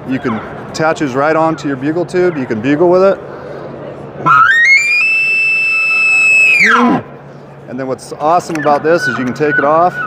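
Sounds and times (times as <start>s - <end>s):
elk call whistle: 4.2s - 7.0s.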